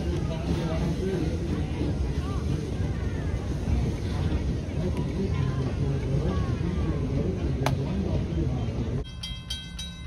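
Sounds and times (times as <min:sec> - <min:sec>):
faint voices: 0:00.0 - 0:09.0
train coaches rumbling past: 0:00.0 - 0:10.0.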